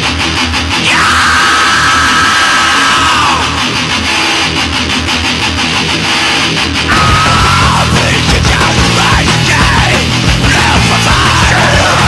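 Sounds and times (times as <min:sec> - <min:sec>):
distorted heavy metal band: 0:00.0 - 0:12.0.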